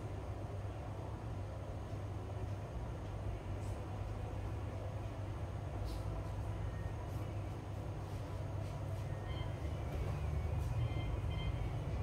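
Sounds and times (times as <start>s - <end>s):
faint high tones: 9.0s - 12.0s.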